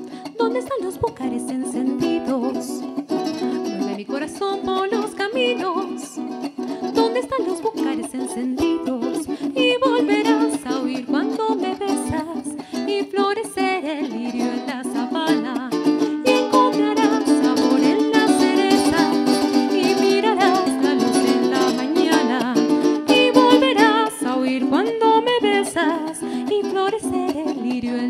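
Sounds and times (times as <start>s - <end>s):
cuatro strummed in rapid chords: 0.0s - 28.0s.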